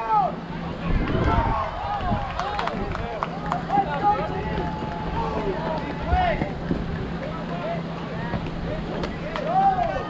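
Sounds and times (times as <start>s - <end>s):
people calling out and chattering: 0.0s - 10.0s.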